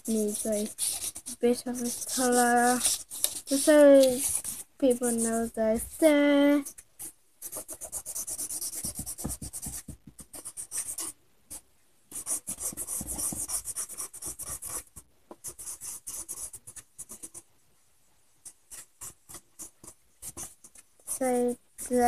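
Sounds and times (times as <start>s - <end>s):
pen scribbling on paper: 0.0s - 5.5s, 7.4s - 11.1s, 12.1s - 17.4s.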